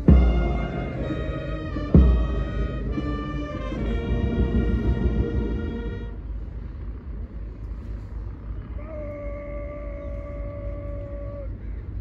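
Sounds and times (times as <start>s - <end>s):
long steady call: 0.0s - 6.6s
low outdoor rumble: 0.0s - 12.0s.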